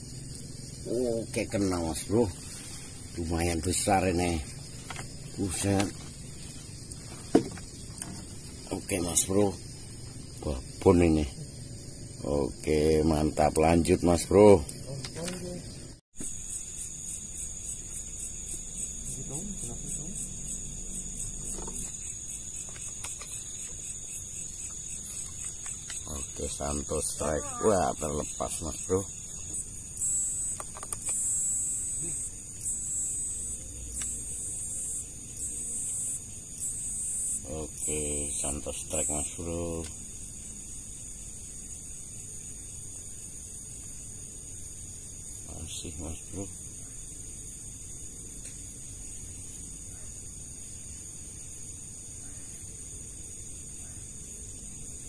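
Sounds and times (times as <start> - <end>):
insects buzzing in trills: 0.0 - 55.0
low hiss of night ambience: 0.0 - 55.0.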